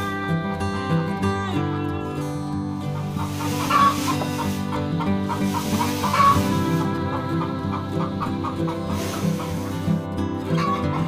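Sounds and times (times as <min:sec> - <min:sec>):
background music: 0:00.0 - 0:11.0
farmyard animal calls: 0:02.8 - 0:11.0.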